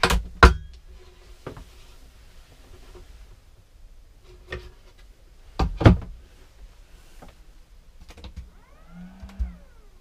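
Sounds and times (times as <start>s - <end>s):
low hum: 6.4s - 10.0s.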